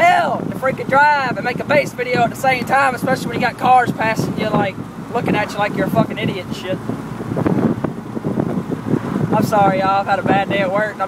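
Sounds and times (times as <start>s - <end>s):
road noise: 0.0s - 11.0s
truck engine: 0.0s - 11.0s
wind buffeting microphone: 0.0s - 11.0s.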